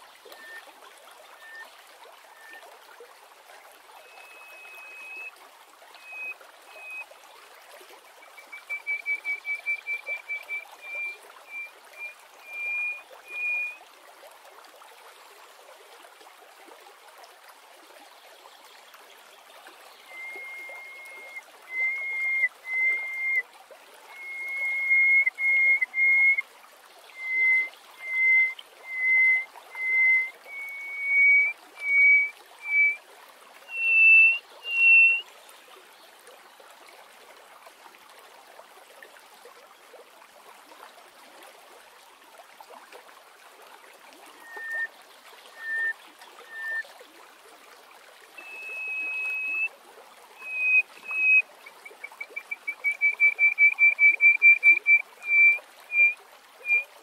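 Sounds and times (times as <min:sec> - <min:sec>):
lark singing piping whistles: 0:00.4 - 0:00.6, 0:01.4 - 0:01.6, 0:04.0 - 0:05.3, 0:06.0 - 0:07.0, 0:08.2 - 0:13.8, 0:20.1 - 0:23.4, 0:24.1 - 0:26.4, 0:27.1 - 0:33.0, 0:33.7 - 0:35.2, 0:44.4 - 0:44.9, 0:45.6 - 0:46.8, 0:48.4 - 0:49.7, 0:50.4 - 0:56.9.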